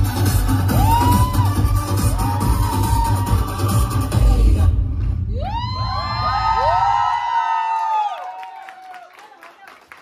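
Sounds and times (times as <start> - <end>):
dance music with heavy beat: 0.0 - 6.8
crowd cheering and whooping: 0.5 - 4.1, 5.3 - 9.7.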